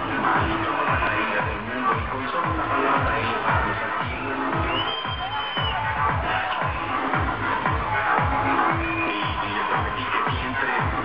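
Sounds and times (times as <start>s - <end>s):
electronic kick drum beat: 0.0s - 11.0s.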